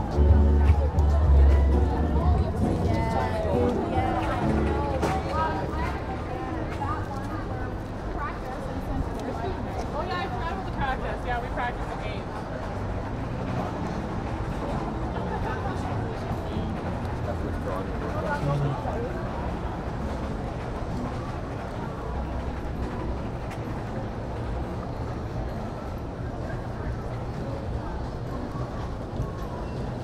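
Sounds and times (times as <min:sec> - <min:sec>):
low city hum: 0:00.0 - 0:30.0
passersby talking: 0:00.0 - 0:30.0.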